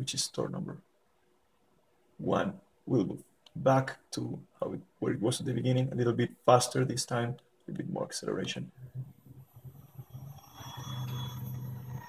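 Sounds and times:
linear drive motor humming: 0:08.8 - 0:12.0.

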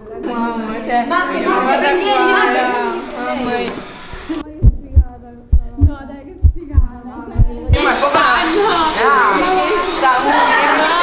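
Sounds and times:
heartbeat thumps: 0:04.4 - 0:07.9.

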